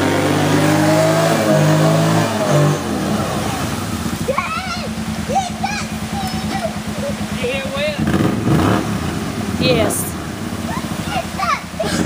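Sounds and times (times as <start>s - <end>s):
engine revving: 0.0s - 12.0s
water splashing around wheels: 0.0s - 12.0s.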